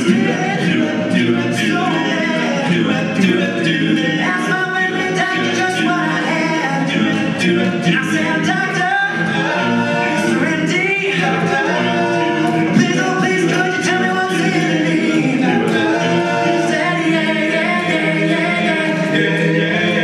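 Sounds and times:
male a cappella group singing: 0:00.0 - 0:20.0.

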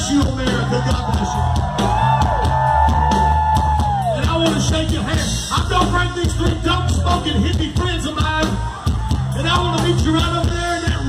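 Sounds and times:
heavy bass line: 0:00.0 - 0:11.0
live rock band playing: 0:00.0 - 0:11.0.

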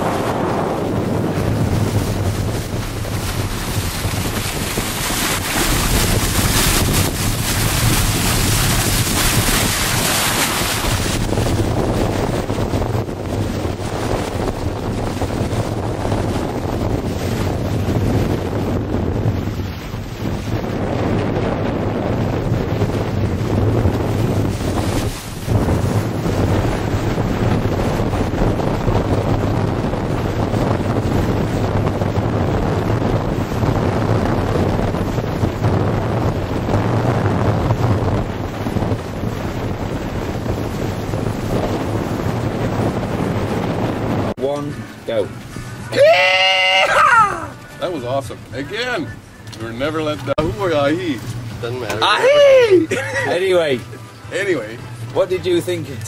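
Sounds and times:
water rushing along boat hull: 0:00.0 - 0:56.0
wind buffeting microphone: 0:00.0 - 0:56.0.

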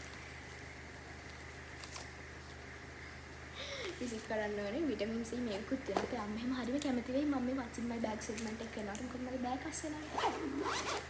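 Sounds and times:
woman's voice: 0:03.9 - 0:10.2
zipper of hard-shell case: 0:10.1 - 0:11.0.

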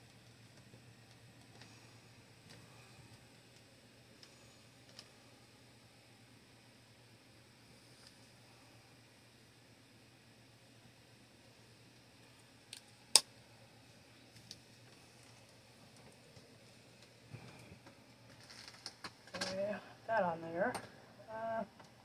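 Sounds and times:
low steady hum: 0:00.0 - 0:22.0.

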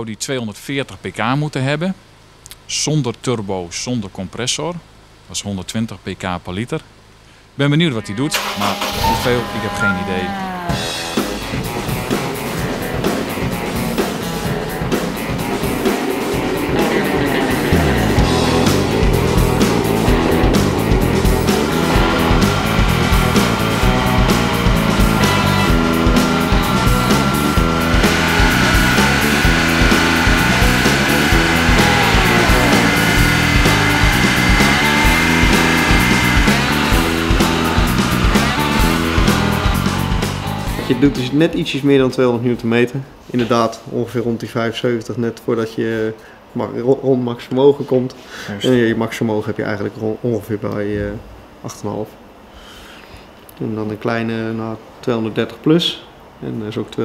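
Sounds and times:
background music with steady beat: 0:09.2 - 0:41.4.

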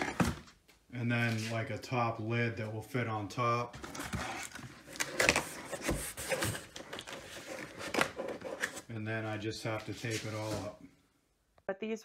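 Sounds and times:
cardboard knocks and scrapes: 0:03.8 - 0:08.8.

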